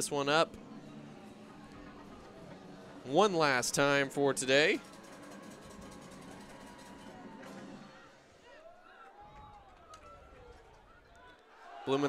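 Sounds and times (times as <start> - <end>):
stadium music: 0.0 - 8.4
distant crowd voices: 0.0 - 12.0.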